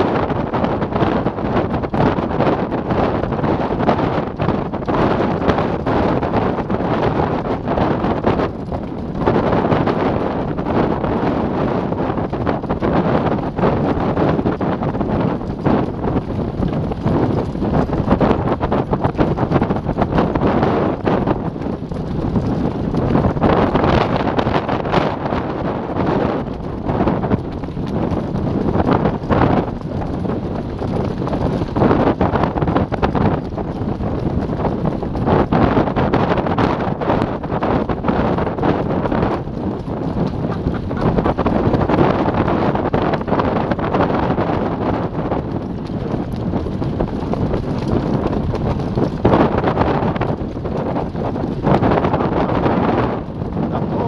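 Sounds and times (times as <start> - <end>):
cart wheels rattling: 0.0 - 54.0
horse hooves on dirt: 0.0 - 54.0
wind buffeting microphone: 0.0 - 54.0.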